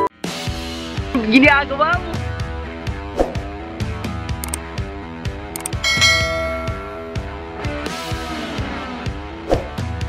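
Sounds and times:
upbeat background music: 0:00.0 - 0:10.0
bright bell chime: 0:05.8 - 0:07.3.

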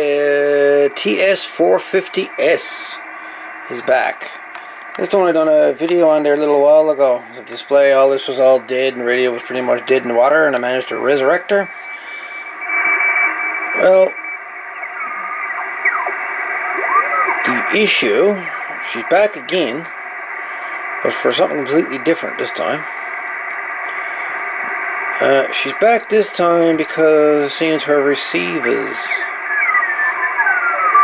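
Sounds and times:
radio band hiss: 0:00.0 - 0:31.0
whistling beat notes gliding down: 0:12.1 - 0:19.7, 0:28.5 - 0:31.0
tones sliding in pitch: 0:12.2 - 0:19.0.

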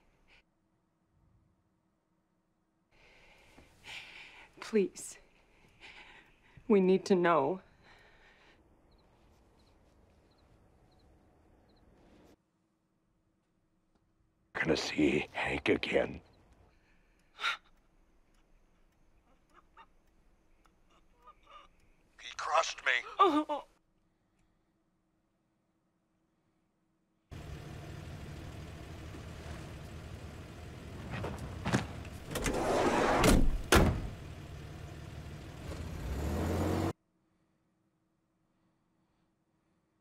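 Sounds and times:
van engine running: 0:27.3 - 0:36.9.

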